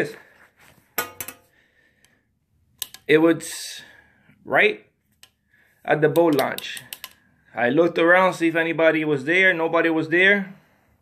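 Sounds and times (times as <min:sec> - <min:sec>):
metal pliers clicking: 0:02.8 - 0:03.1, 0:06.2 - 0:07.2.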